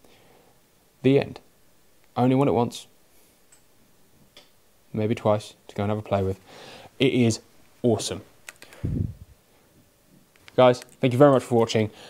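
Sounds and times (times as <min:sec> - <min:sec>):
man talking: 0:01.0 - 0:01.5, 0:02.2 - 0:02.9, 0:04.9 - 0:06.4, 0:07.0 - 0:08.3, 0:10.6 - 0:12.0
faint clicks: 0:08.4 - 0:08.8.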